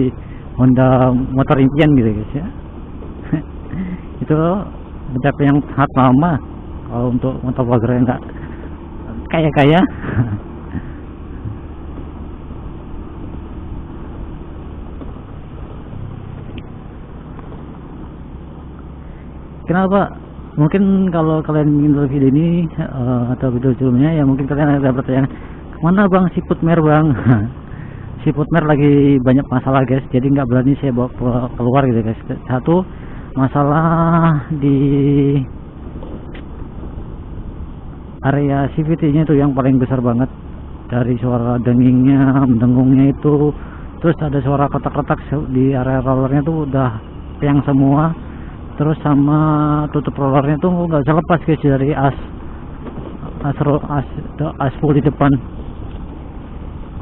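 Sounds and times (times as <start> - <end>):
road rumble on dirt road: 0.0 - 57.0
scooter engine cruising: 0.0 - 57.0
wind: 0.0 - 57.0.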